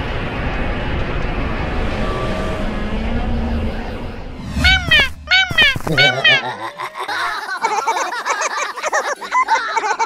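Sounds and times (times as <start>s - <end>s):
high cartoon voice giggling: 4.6s - 10.0s.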